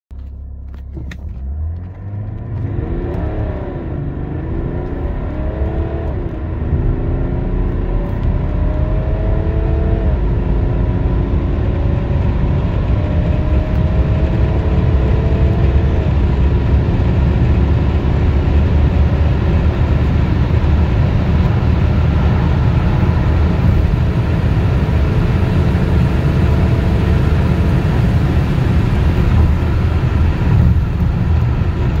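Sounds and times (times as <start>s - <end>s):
road and wind rumble: 0.1s - 32.0s
diesel engine accelerating hard: 0.2s - 32.0s.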